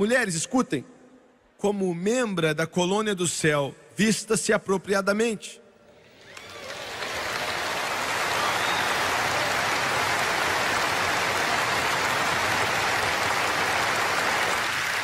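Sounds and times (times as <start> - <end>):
large audience applauding: 6.0 - 15.0.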